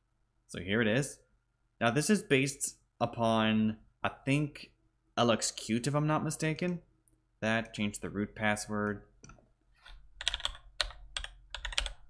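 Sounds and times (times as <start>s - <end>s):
keyboard typing clicks: 10.2s - 12.0s.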